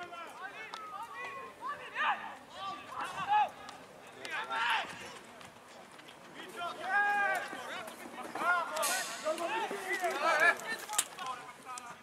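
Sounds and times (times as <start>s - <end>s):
people shouting outdoors: 0.0s - 5.1s, 6.4s - 11.7s.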